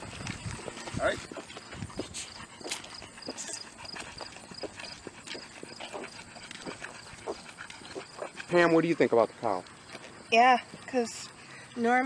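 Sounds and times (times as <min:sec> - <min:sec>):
footsteps on asphalt: 0:00.0 - 0:10.9.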